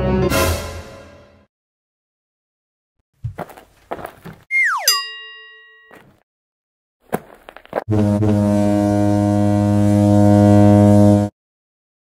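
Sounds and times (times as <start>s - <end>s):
whistle tone sliding down: 4.5s - 5.1s
bell-like ding: 4.6s - 6.0s.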